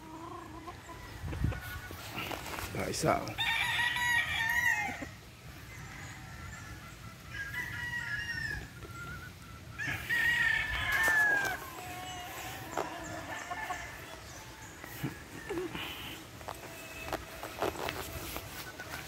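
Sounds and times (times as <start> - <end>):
roosters crowing: 0.0 - 19.0.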